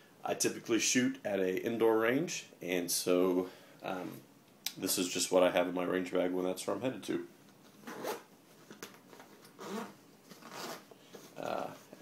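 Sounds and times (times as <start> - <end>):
zipper being pulled open: 7.8 - 8.3, 9.4 - 10.9.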